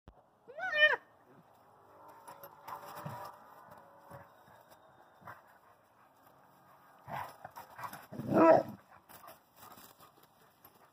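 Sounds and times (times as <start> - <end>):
dogs scuffling and growling: 1.6 - 10.9.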